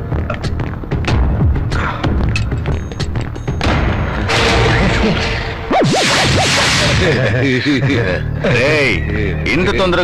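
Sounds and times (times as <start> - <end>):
comic whoosh with wavering tone: 5.7 - 7.2.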